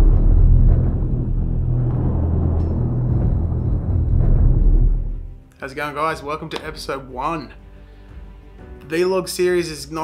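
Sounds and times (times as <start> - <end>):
deep low rumble: 0.0 - 5.4
dark cinematic score: 0.0 - 5.5.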